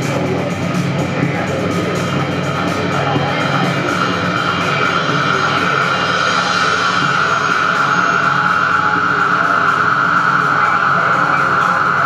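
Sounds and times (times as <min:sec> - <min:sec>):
dense noisy texture: 0:00.0 - 0:12.0
electronic drone with high tone: 0:00.0 - 0:12.0.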